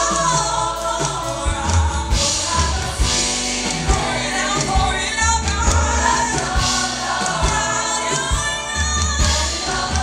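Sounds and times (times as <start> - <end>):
gospel choir singing in harmony: 0.0 - 10.0
sustained bass notes: 0.0 - 10.0.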